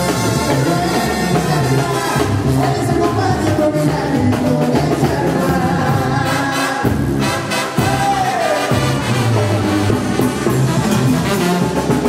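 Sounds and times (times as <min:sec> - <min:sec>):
live band music with singing: 0:00.0 - 0:12.0.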